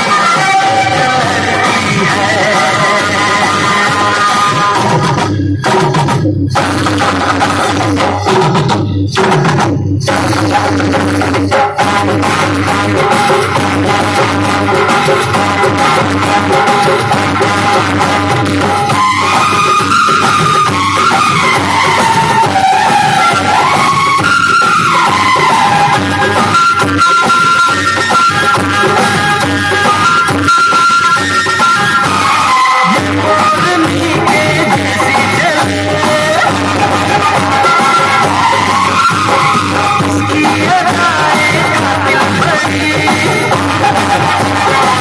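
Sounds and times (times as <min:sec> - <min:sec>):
music through horn loudspeakers: 0:00.0 - 0:45.0.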